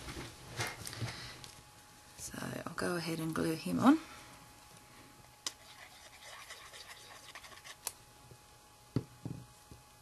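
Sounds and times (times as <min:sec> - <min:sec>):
paper scratching and rustling: 0:05.6 - 0:07.8.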